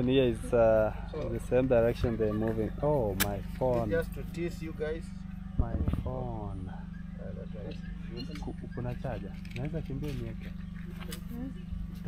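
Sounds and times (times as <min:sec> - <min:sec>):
people talking: 0:00.0 - 0:12.0
steady low hum: 0:00.0 - 0:12.0.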